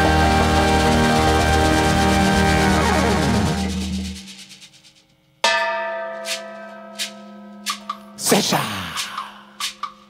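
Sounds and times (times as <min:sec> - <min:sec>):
band music: 0:00.0 - 0:04.3.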